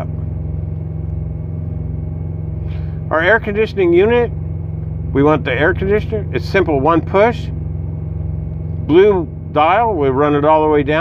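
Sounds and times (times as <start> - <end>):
small diesel engine humming: 0.0 - 11.0.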